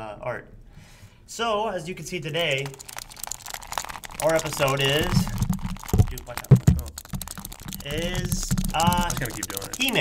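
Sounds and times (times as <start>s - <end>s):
plastic clicks and taps: 2.5s - 10.0s.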